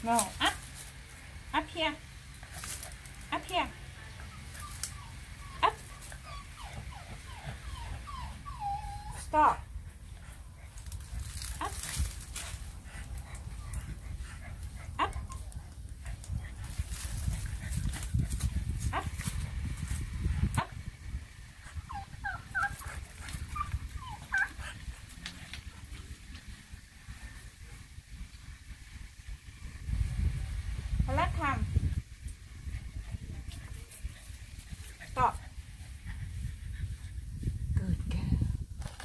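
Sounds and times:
low rumbling microphone noise: 1.2s - 39.0s
dog whining: 4.2s - 9.6s, 21.8s - 24.8s.

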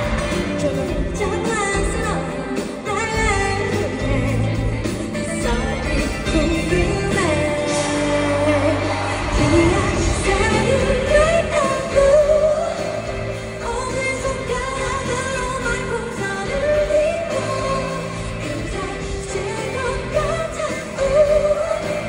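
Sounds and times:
female singer: 0.0s - 22.0s
live pop song through pa: 0.0s - 22.0s.

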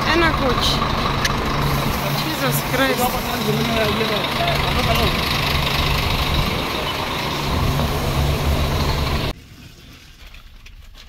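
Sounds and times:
truck and bus engines idling: 0.0s - 10.2s.

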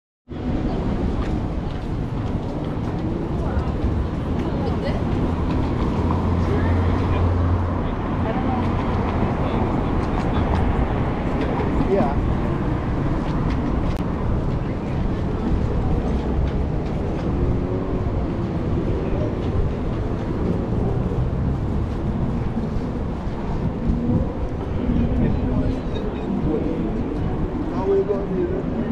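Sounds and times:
chatter of passers-by: 0.3s - 28.9s
traffic rumble from passing cars: 0.3s - 28.9s.

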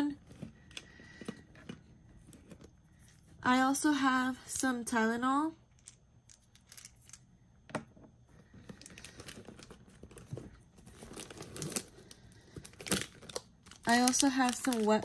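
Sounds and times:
handbag contents rustling: 8.7s - 15.0s
plastic wet wipes pack crinkling: 11.0s - 15.0s.

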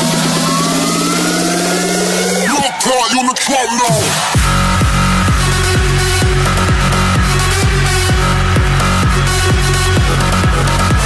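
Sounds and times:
rising synth sweep: 0.0s - 2.8s.

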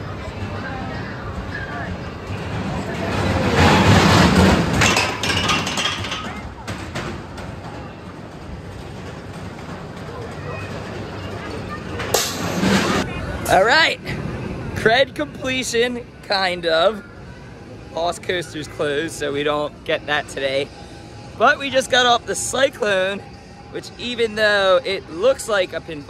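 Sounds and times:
roller coaster car on track: 0.0s - 26.0s.

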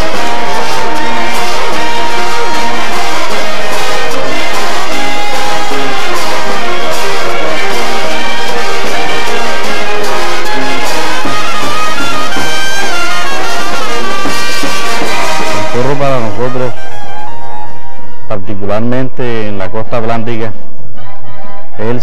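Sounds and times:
bass drum: 0.0s - 16.9s
brass band playing: 0.0s - 17.9s
trumpets and trombones: 0.0s - 18.1s.

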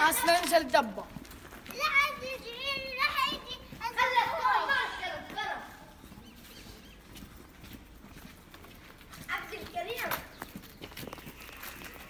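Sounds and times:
child's footsteps on wet pavement: 0.0s - 12.0s
child's voice: 1.6s - 6.0s, 9.2s - 10.4s.

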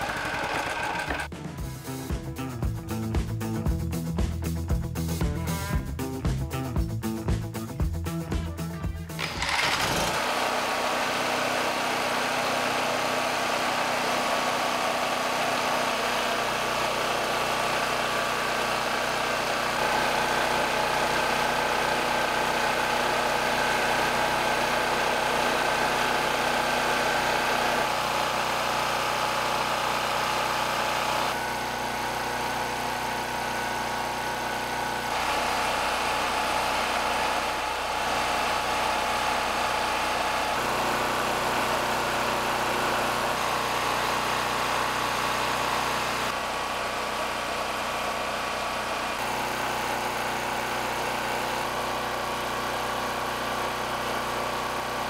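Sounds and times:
portable generator engine running: 0.0s - 55.0s.

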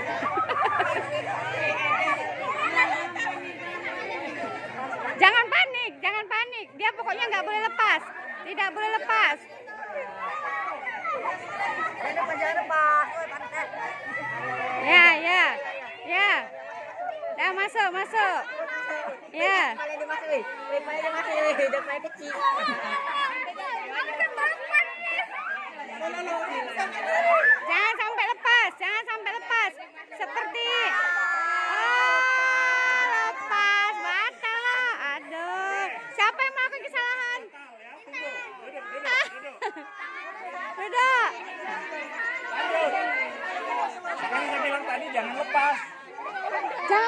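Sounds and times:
children chattering: 0.0s - 47.0s.

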